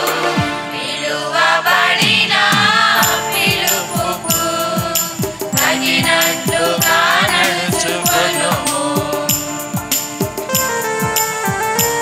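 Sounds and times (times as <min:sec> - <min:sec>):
women singing devotional song: 0:00.0 - 0:10.0
drum strokes: 0:01.7 - 0:12.0
jingling percussion: 0:01.8 - 0:12.0.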